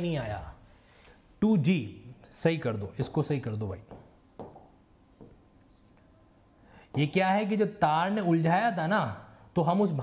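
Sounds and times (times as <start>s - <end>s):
marker tapping whiteboard: 3.8s - 5.6s
marker scratching on whiteboard: 5.2s - 5.9s.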